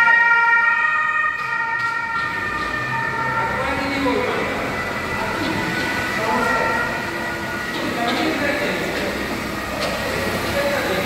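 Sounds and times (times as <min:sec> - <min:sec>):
police sirens echoing: 0:00.0 - 0:11.0
voices: 0:02.2 - 0:11.0.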